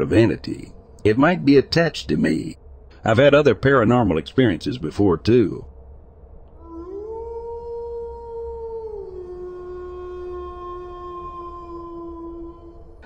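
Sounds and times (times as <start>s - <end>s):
long howl: 6.5s - 13.0s.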